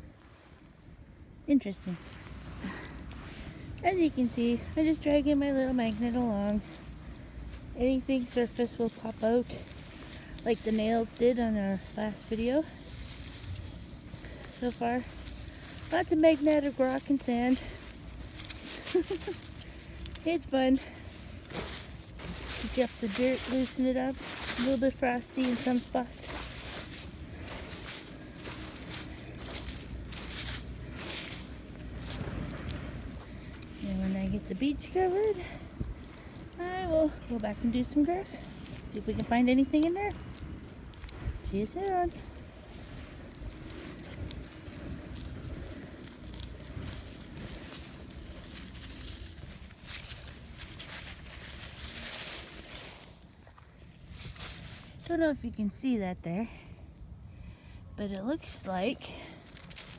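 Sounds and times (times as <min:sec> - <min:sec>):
low steady rumble: 0:00.0 - 0:59.9
footsteps on sand and leaves: 0:01.6 - 0:55.8, 0:58.1 - 0:59.9.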